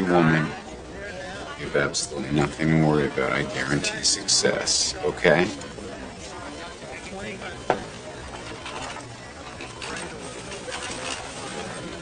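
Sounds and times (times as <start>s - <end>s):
faint murmuring voices: 0.0s - 12.0s.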